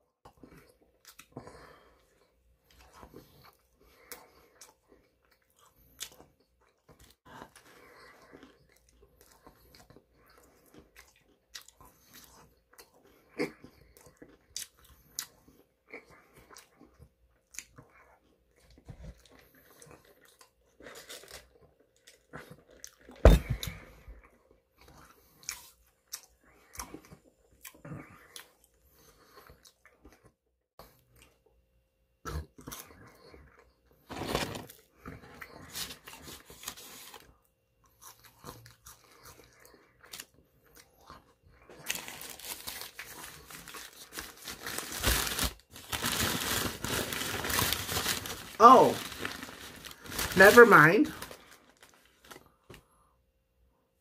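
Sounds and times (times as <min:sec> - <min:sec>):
chewing and biting food: 0:00.2 - 0:31.5, 0:32.2 - 0:46.6.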